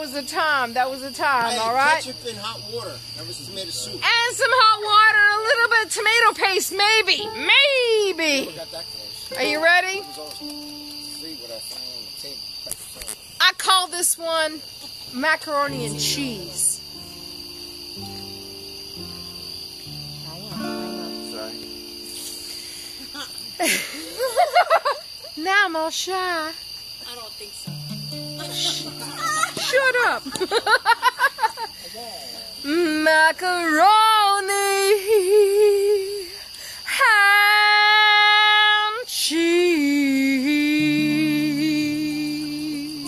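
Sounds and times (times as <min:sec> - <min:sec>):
woman singing unaccompanied: 0:00.0 - 0:02.1, 0:04.0 - 0:11.0, 0:15.2 - 0:17.1, 0:27.6 - 0:30.4, 0:32.5 - 0:43.0
crickets chirring: 0:00.0 - 0:43.0
guitar chords: 0:06.7 - 0:11.4, 0:15.6 - 0:23.5, 0:27.7 - 0:30.7, 0:40.8 - 0:43.0
quick breath: 0:36.4 - 0:36.9.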